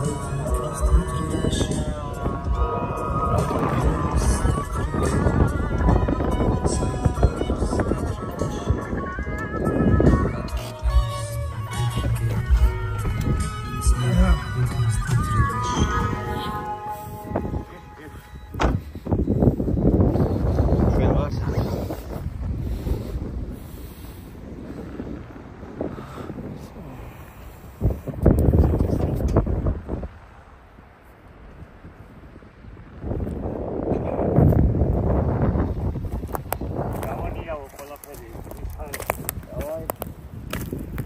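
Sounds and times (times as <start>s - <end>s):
wind gusting on microphone: 0.0s - 41.0s.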